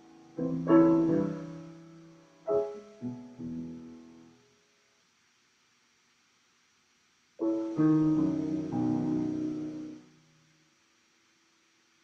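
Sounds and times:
piano chord: 0.0 - 4.4, 7.4 - 10.3.

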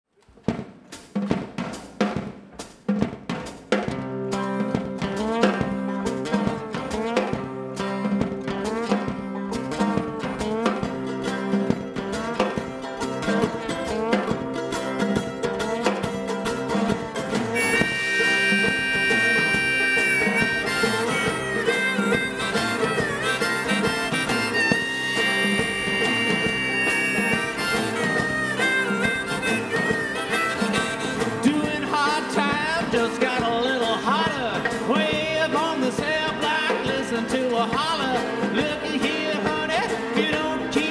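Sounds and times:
acoustic string band: 0.4 - 40.9
harmonica bending notes: 4.1 - 34.3.

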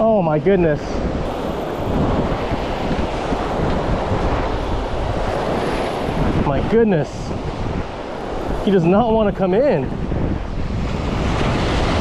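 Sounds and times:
surf breaking on sand: 0.0 - 12.0
wind buffeting microphone: 0.0 - 12.0.

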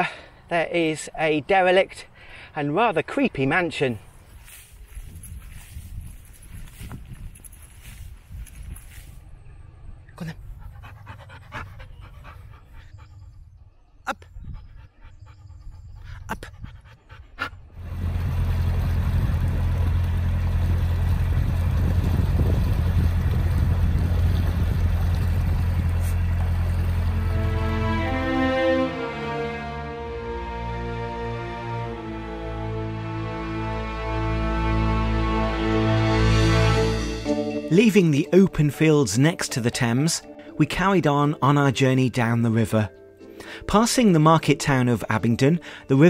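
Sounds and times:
rustling in long grass: 4.1 - 9.3
dog panting: 10.4 - 17.8
loud steady rumbling: 17.8 - 28.5.

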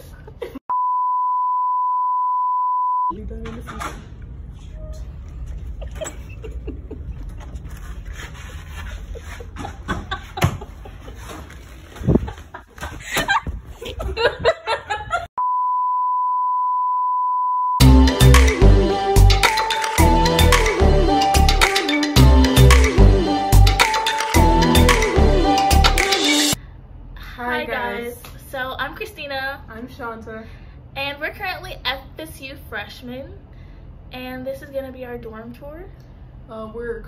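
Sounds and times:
electronic bleep tone: 0.7 - 3.1, 15.4 - 17.8
steady high-pitched beep: 0.7 - 3.1
loud music with heavy bass: 17.8 - 26.6.

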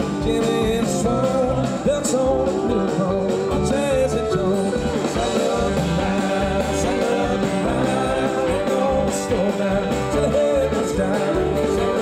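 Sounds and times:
drums: 0.0 - 12.0
upright bass: 0.0 - 12.0.

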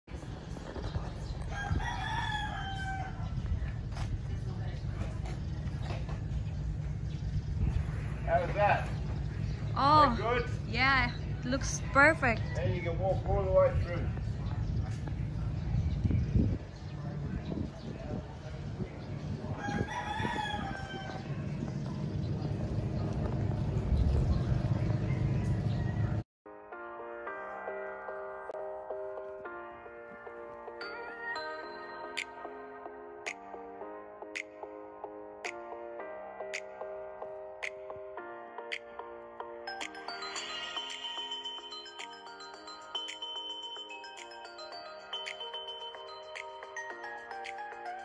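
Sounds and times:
steady low rumble: 0.1 - 26.2
rooster crowing: 1.5 - 3.4, 19.5 - 21.4.

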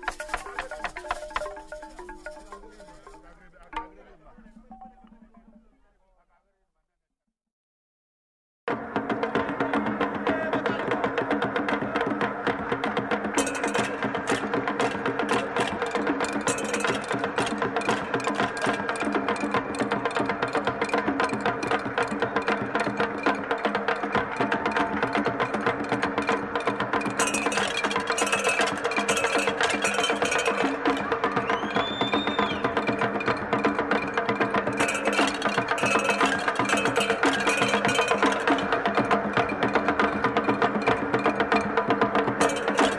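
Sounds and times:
fast clicking percussion: 0.0 - 5.8, 9.0 - 42.9
sliding whistle-like tone: 31.2 - 32.9.

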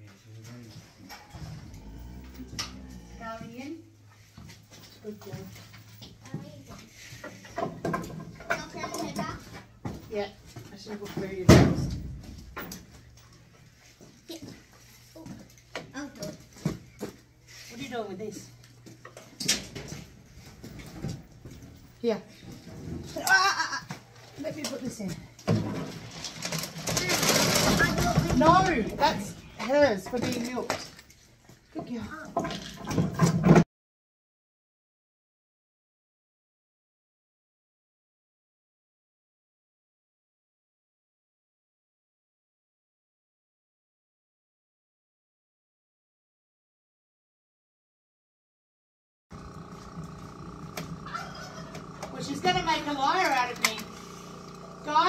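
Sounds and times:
milking machine hum: 1.2 - 3.3, 49.3 - 55.0.

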